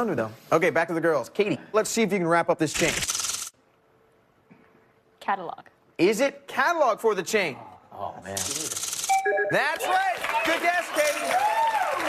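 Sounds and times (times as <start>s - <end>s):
game-show buzzer: 9.1s - 10.1s.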